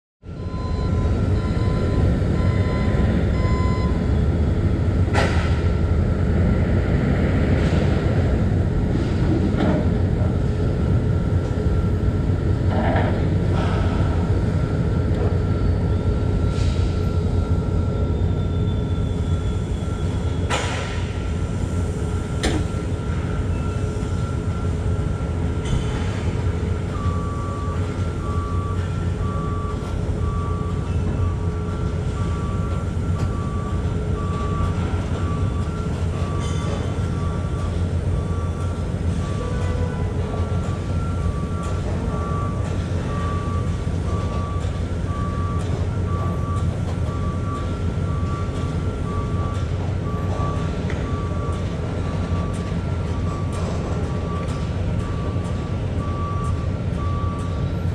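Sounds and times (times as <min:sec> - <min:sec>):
back-up alarm beeping: 0:00.3 - 0:05.8, 0:13.3 - 0:57.9
diesel heavy equipment rumbling: 0:00.3 - 0:57.9.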